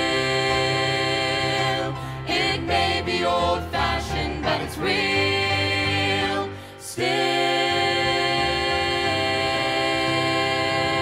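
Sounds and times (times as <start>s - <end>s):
voices singing sustained chord: 0.0s - 11.0s.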